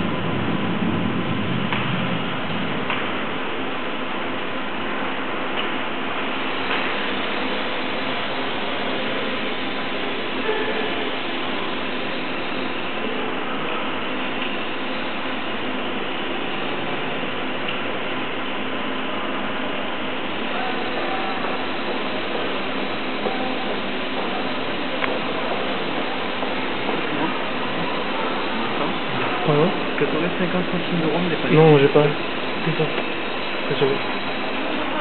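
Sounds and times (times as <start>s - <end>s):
steady background noise: 0.0s - 35.0s.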